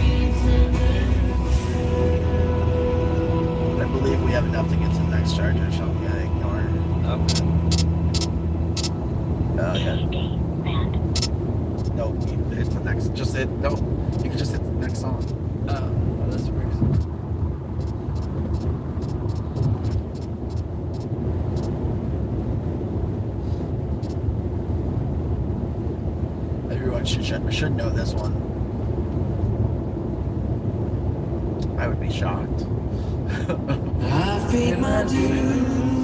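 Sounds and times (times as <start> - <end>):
road and tyre rumble in car: 0.0 - 36.0.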